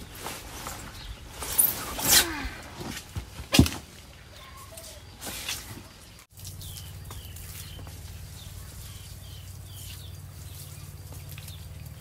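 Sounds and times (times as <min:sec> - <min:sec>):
celery rustling and scraping: 0:00.0 - 0:10.6.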